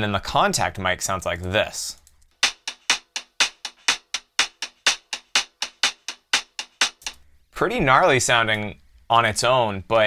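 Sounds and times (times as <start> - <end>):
hi-hat dry clicks: 2.0 - 7.2.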